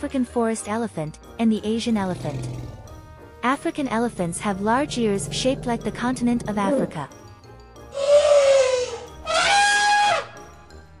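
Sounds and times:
elephant trumpeting: 7.9 - 10.4.

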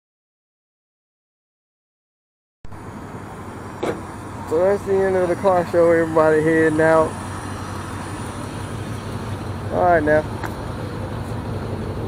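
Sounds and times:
pickup truck driving past: 2.7 - 12.0.

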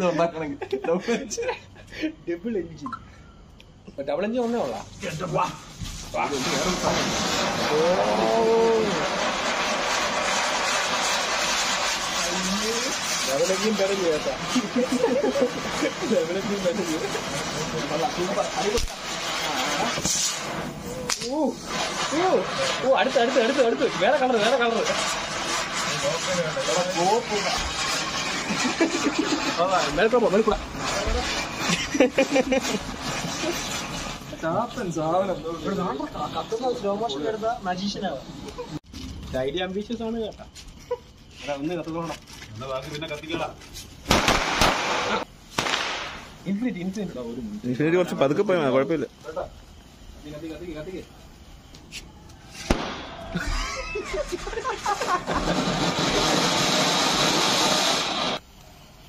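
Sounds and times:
ground firework hissing: 0.0 - 59.0
firework crack: 3.5 - 59.0.

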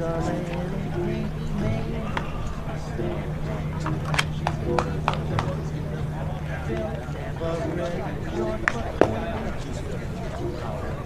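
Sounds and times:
faint voices chattering: 0.0 - 11.0
steady low hum: 0.0 - 11.0.

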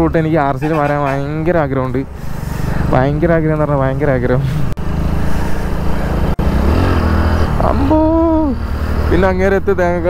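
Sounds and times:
motorcycle engine running: 4.7 - 10.0.

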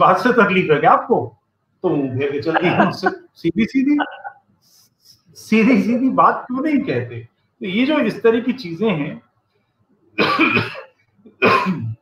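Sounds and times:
man coughing: 10.2 - 12.0.

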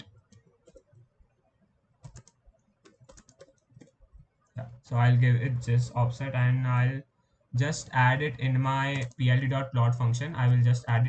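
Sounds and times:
keyboard typing: 0.0 - 4.8, 7.6 - 11.0.

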